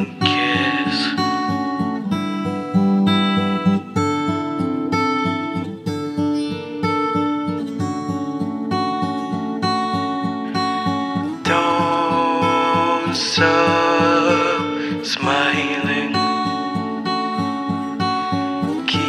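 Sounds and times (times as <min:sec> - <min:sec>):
fingerpicked acoustic guitar: 0:00.0 - 0:19.0.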